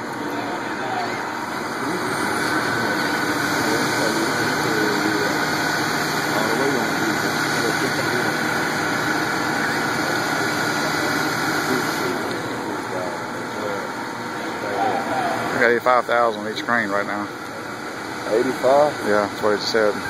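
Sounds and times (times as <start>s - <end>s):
indistinct voices: 0.0s - 17.2s
faint steady whine: 0.0s - 20.0s
heavy machinery engines running: 0.0s - 20.0s.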